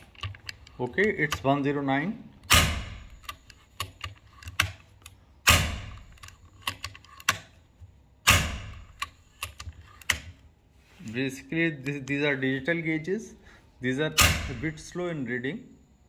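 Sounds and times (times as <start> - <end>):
air rifle shots: 5.4 - 6.0, 8.2 - 8.9.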